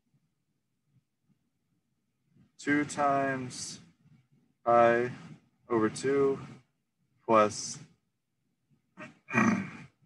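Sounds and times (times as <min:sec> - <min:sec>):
man speaking: 0:02.6 - 0:03.8, 0:04.7 - 0:06.5, 0:07.3 - 0:07.9.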